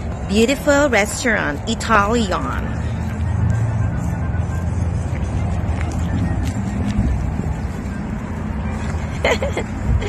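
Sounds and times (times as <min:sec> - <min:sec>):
background music: 0:00.0 - 0:10.0
low outdoor rumble: 0:00.0 - 0:10.0.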